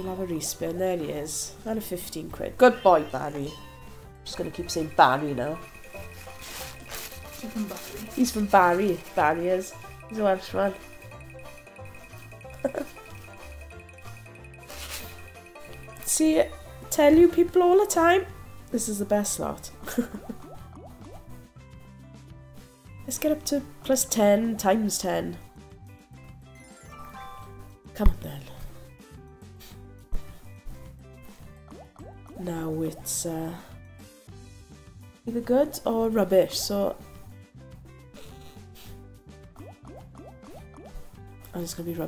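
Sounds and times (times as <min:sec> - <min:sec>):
low backing music: 0:00.0 - 0:42.0.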